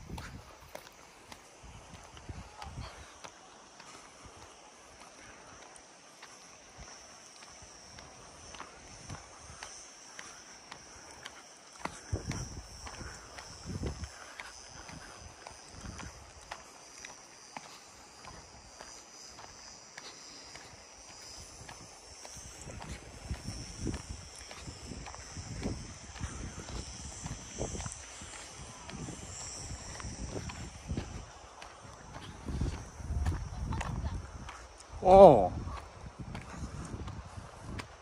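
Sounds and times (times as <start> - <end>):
cicadas droning: 0.0 - 38.0
footsteps on gravel: 0.0 - 38.0.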